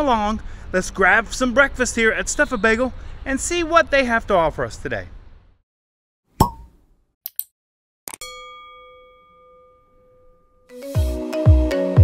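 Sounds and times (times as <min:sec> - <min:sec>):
pop: 0:06.4 - 0:06.8
bell-like ding: 0:08.2 - 0:11.0.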